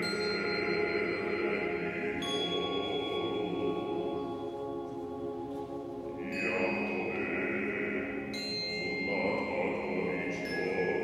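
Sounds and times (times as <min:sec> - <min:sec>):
choir singing sustained chords: 0:00.0 - 0:11.0
high bell ringing: 0:08.3 - 0:09.5.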